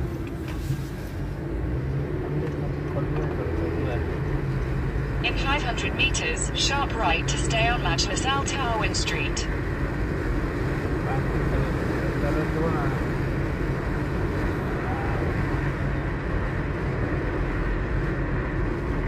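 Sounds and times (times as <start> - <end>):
car interior road rumble: 0.0 - 19.0.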